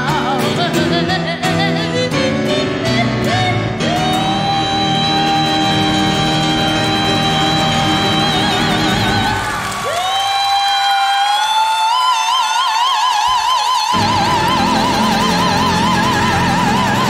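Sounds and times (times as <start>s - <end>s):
grand piano: 0.0s - 10.0s, 13.9s - 17.0s.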